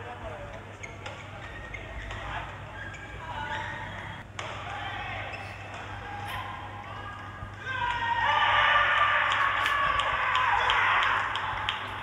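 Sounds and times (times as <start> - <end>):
shoes squeaking on court floor: 0.5 - 4.1.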